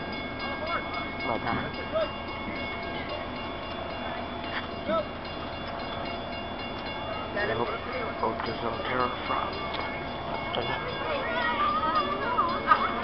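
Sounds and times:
stopped train whine: 0:00.0 - 0:13.0
people talking: 0:07.4 - 0:09.8, 0:10.5 - 0:13.0.

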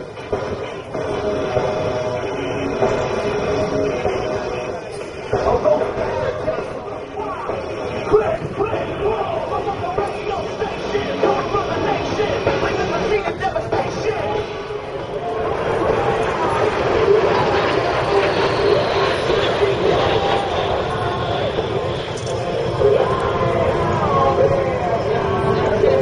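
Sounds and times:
crowd voices: 0:00.0 - 0:26.0
jet aircraft flying by: 0:00.0 - 0:26.0.

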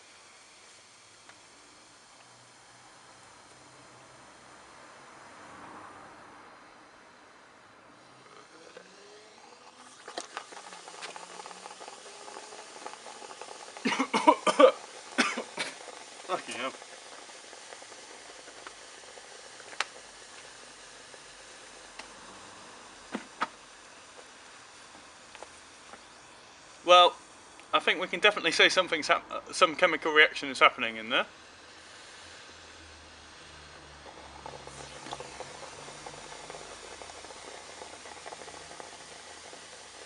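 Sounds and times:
chemical reaction fizzing: 0:00.0 - 0:06.0, 0:07.9 - 0:40.0
person coughing: 0:13.8 - 0:15.8.

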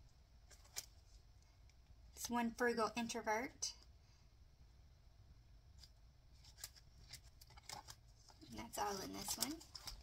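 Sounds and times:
plastic binder clicks and rustles: 0:00.5 - 0:01.0, 0:05.8 - 0:10.0
woman speaking: 0:02.2 - 0:03.8, 0:08.4 - 0:09.7.

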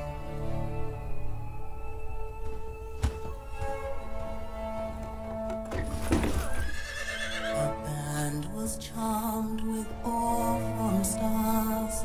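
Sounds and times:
film music: 0:00.0 - 0:12.0
horse neighing: 0:06.3 - 0:07.6.

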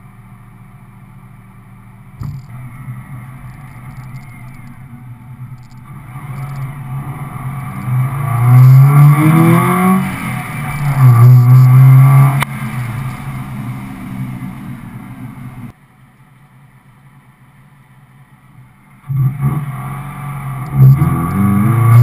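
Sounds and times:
car engine revving: 0:02.0 - 0:15.8, 0:19.0 - 0:22.0
sharp click: 0:02.2 - 0:02.6.

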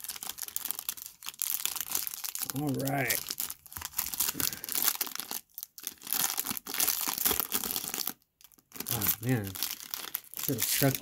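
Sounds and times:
foil wrapper crinkling and tearing: 0:00.0 - 0:11.0.

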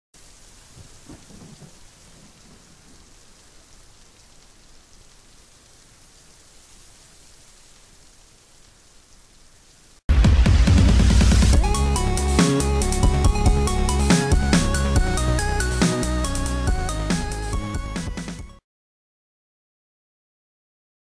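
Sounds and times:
quiet steady rain: 0:00.2 - 0:18.2
low rumble of thunder: 0:00.4 - 0:03.5.

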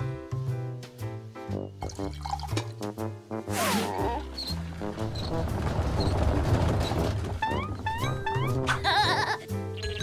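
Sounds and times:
cartoon background music: 0:00.0 - 0:10.0
drink pouring into cups: 0:01.8 - 0:02.8.

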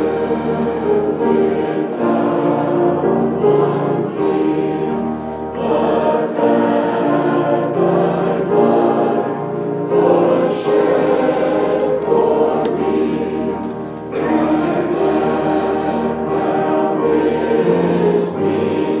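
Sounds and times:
congregation singing a hymn: 0:00.0 - 0:19.0.

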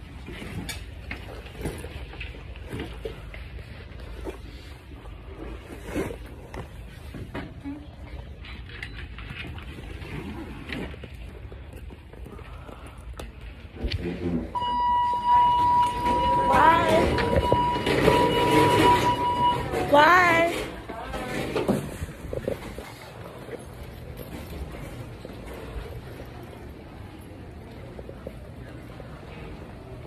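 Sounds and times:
steady electronic beep tone: 0:14.6 - 0:20.0.

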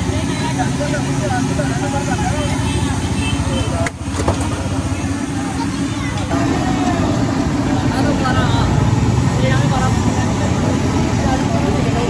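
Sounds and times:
engine running: 0:00.0 - 0:12.0.

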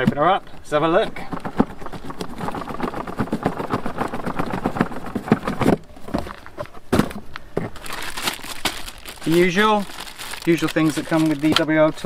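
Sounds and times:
cardboard lid scraping: 0:01.0 - 0:08.0
paper sheet rustling: 0:07.8 - 0:12.0.

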